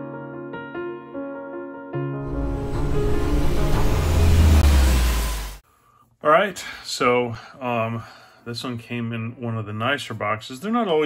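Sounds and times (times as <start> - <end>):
deep rumbling rush: 2.2 - 5.6.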